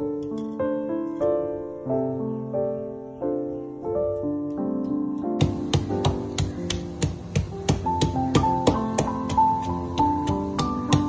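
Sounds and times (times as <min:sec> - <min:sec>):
pestle pounding in wooden mortar: 0:05.4 - 0:11.0.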